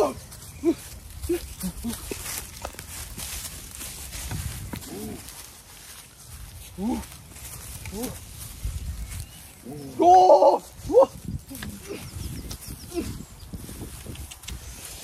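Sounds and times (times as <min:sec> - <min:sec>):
young man exclaiming: 0:09.9 - 0:12.0.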